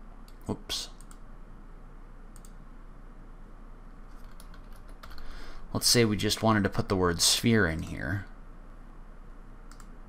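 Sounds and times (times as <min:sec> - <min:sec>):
low background hum: 0:00.0 - 0:10.0
keyboard keystrokes: 0:04.2 - 0:05.3.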